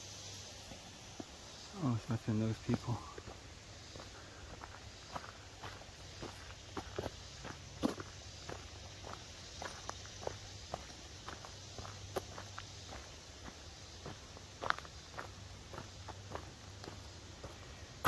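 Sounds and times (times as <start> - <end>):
footsteps on dry leaves: 0.8 - 18.0.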